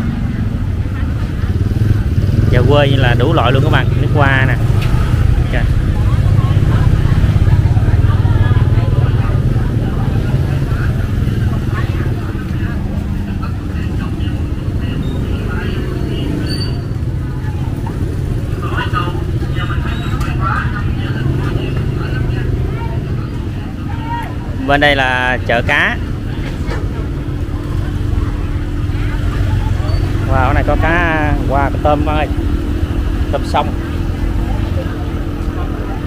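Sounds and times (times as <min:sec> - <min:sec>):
motorbike engines running: 0:00.0 - 0:36.0
people talking: 0:00.0 - 0:36.0.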